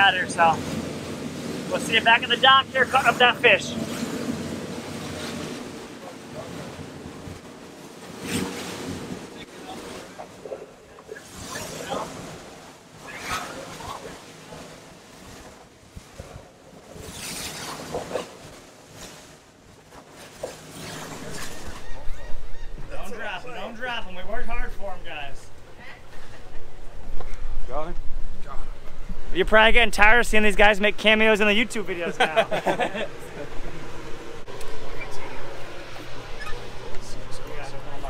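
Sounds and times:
hull slapping and splashing: 0.0 - 22.4.

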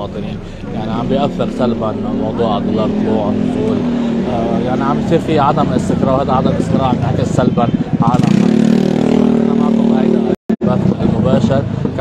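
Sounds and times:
street voices: 0.0 - 12.0
vehicle engine running: 0.0 - 12.0.

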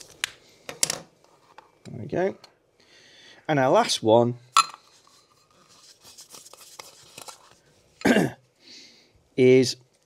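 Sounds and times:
man coughing: 8.0 - 8.4.

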